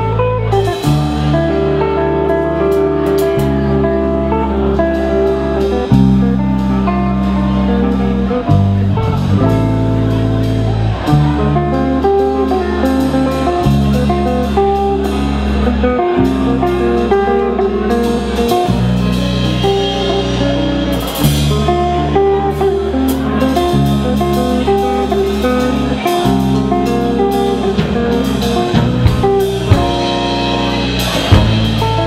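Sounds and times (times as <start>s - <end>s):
bass notes: 0.0s - 32.0s
drum kit and cymbals: 0.0s - 32.0s
electric guitar melody: 0.0s - 32.0s.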